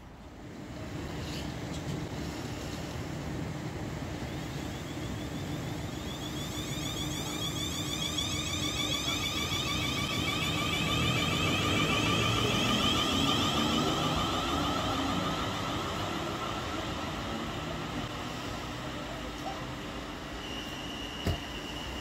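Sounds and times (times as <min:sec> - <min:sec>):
rumble of wheels on rail: 0:00.0 - 0:22.0
train traction motor whine: 0:04.1 - 0:19.2, 0:19.9 - 0:22.0.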